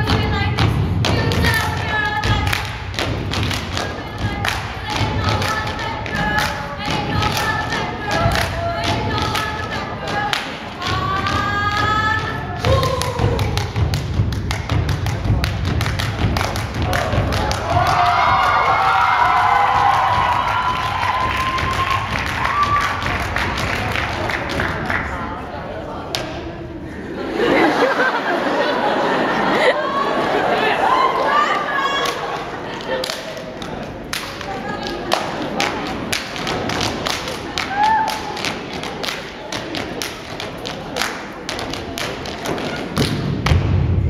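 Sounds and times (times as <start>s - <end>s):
dance music with singing: 0.0s - 24.8s.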